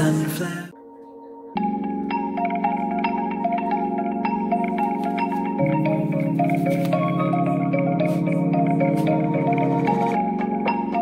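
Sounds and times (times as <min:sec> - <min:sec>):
melody of struck ringing notes: 0:00.0 - 0:11.0.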